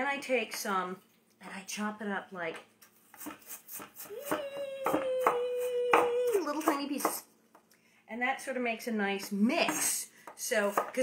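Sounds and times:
knife chopping on wooden board: 0:03.2 - 0:07.2, 0:09.6 - 0:11.0.

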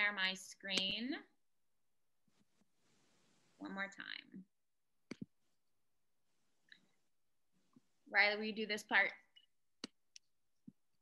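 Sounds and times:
voice: 0:00.0 - 0:01.4, 0:03.6 - 0:04.5, 0:08.1 - 0:09.3.

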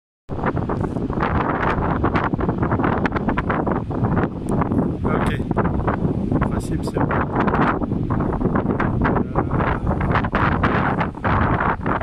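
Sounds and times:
wind buffeting microphone: 0:00.3 - 0:12.0.

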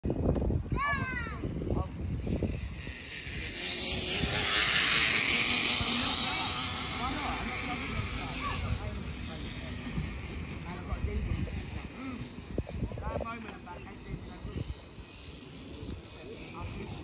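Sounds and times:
faint voices of people and children: 0:03.6 - 0:17.0.

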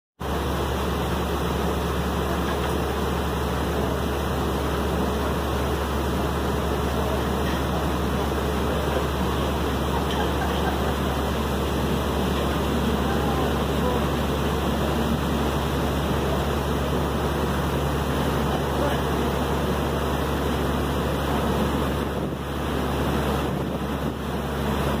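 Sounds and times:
boat engine droning: 0:00.2 - 0:25.0
churning wake rushing: 0:00.2 - 0:25.0.

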